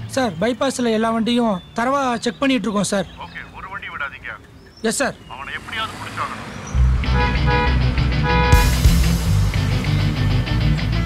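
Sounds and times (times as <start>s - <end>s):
tense dramatic music: 5.6s - 11.0s
drums and cymbals: 8.1s - 10.4s.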